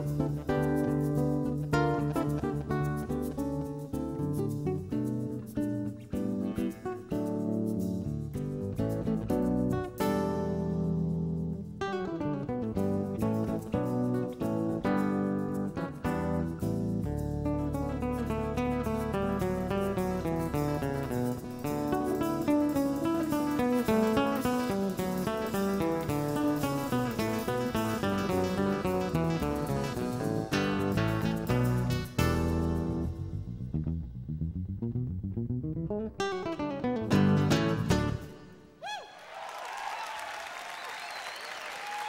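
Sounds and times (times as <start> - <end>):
guitar picking fast notes: 0.0 - 38.8
low sustained bass notes: 12.5 - 38.3.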